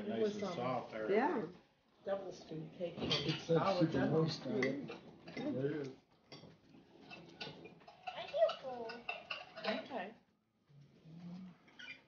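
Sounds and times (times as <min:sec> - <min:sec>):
forks scraping on plates: 0:06.3 - 0:09.9, 0:11.2 - 0:12.0.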